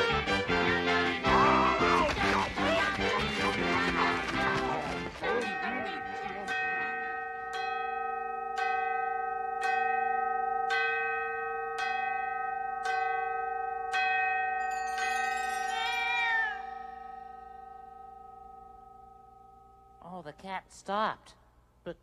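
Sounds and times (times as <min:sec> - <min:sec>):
clock bell striking: 0:05.2 - 0:20.2.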